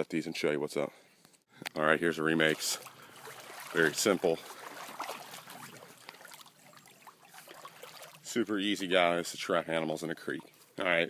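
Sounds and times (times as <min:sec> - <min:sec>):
creek trickling: 0:01.7 - 0:11.0.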